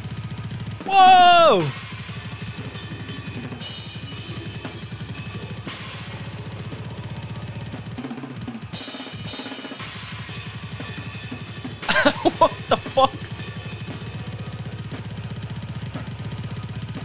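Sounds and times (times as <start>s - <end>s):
snare drum: 11.8s - 13.1s.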